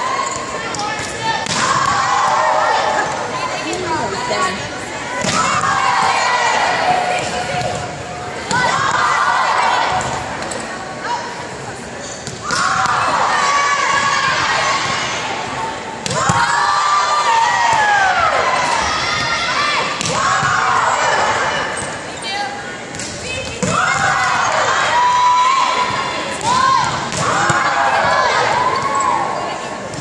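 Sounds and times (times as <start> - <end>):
players calling and chattering: 0.0 - 30.0.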